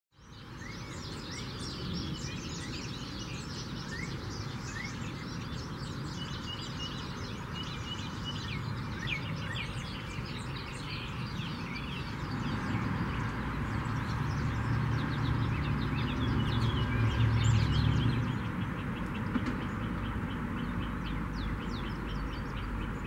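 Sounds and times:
small birds chirping: 0:00.2 - 0:23.0.

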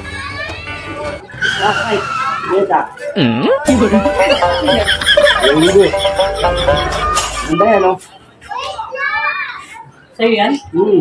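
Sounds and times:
high-pitched voices talking: 0:00.0 - 0:10.1.

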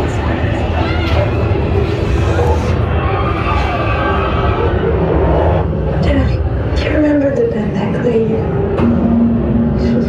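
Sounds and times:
deep rumbling drone: 0:00.0 - 0:10.0.

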